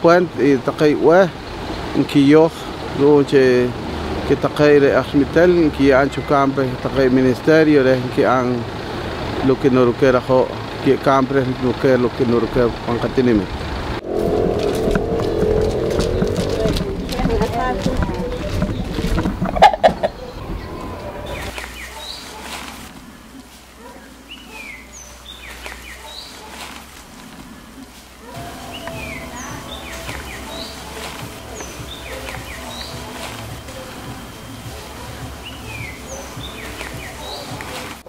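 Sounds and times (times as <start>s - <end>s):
steady background noise: 0.0s - 38.0s
background ambience: 13.4s - 38.0s
brief rustle: 21.5s - 23.7s
birds whistling downward notes: 28.4s - 37.6s.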